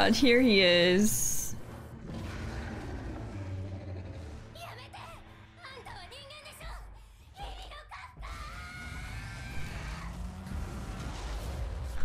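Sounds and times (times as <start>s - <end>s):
monster screaming cry: 2.1s - 4.4s, 8.3s - 10.8s.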